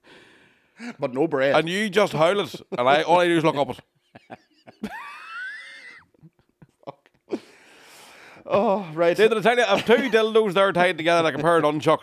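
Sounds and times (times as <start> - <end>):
man's squealing laugh: 4.6 - 6.3.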